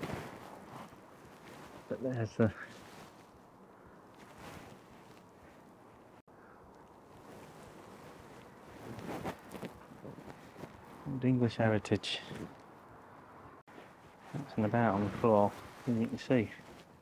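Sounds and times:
soft knocks and rustling: 7.3 - 10.9.

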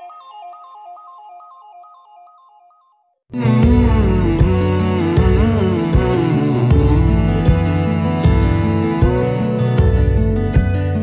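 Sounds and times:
simple electronic melody: 0.0 - 11.0.

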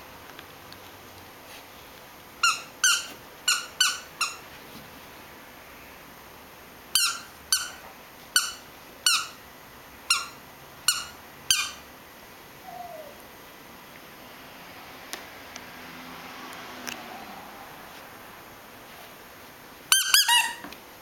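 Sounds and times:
toy squeaker squeaks: 2.4 - 4.4, 7.0 - 7.8, 8.4 - 9.4, 10.1 - 11.8, 19.9 - 20.7.

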